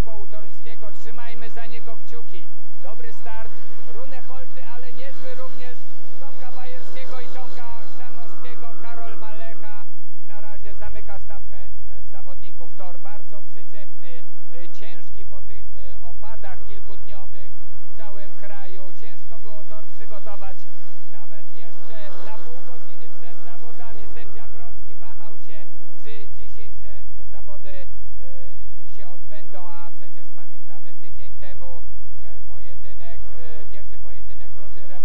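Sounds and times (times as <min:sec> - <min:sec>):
heavy low rumble: 0:00.0 - 0:35.0
man's voice: 0:00.0 - 0:35.0
motorcycle engines racing: 0:00.0 - 0:35.0.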